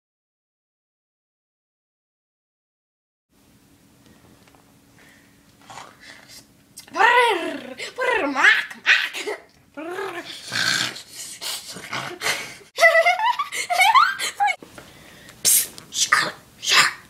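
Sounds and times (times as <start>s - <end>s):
girl squealing: 13.6s - 14.6s.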